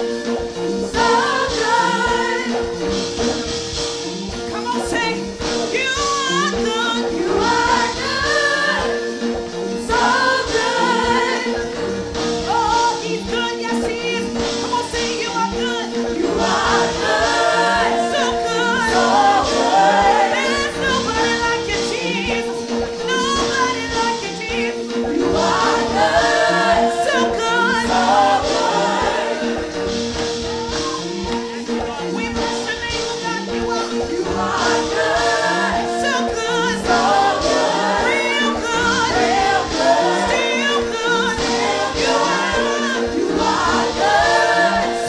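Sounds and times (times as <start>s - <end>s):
women singing gospel song: 0.0s - 3.4s, 4.5s - 45.0s
instrumental backing with held chords: 0.0s - 45.0s.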